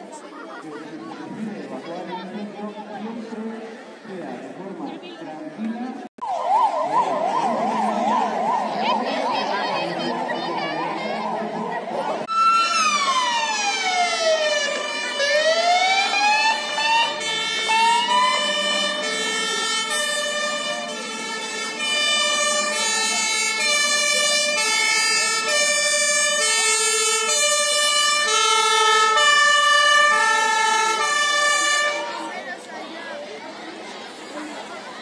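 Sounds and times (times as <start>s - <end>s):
fire engine siren: 6.2s - 32.4s.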